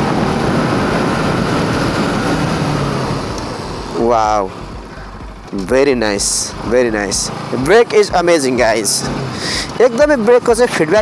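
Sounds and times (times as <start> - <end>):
wind rush on microphone: 0.0 - 3.9
motorcycle engine accelerating: 0.0 - 11.0.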